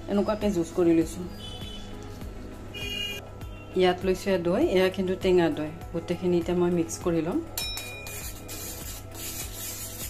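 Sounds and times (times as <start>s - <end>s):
background music: 0.0s - 10.0s
metal spoon scraping bowl: 7.8s - 10.0s.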